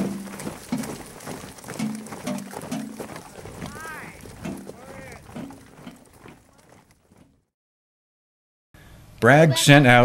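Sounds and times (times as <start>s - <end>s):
young voices calling out: 3.2s - 6.8s.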